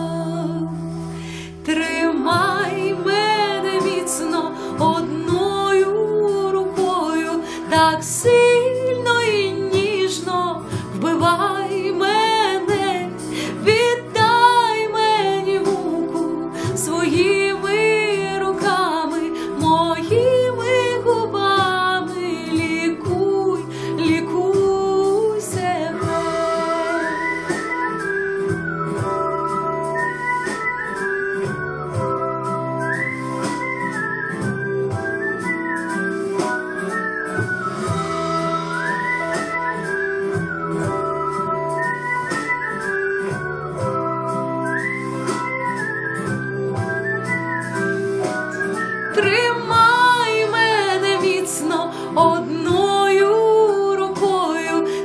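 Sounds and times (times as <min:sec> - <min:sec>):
woman singing: 0:00.0 - 0:28.0, 0:48.5 - 0:55.0
pop backing track: 0:00.0 - 0:55.0.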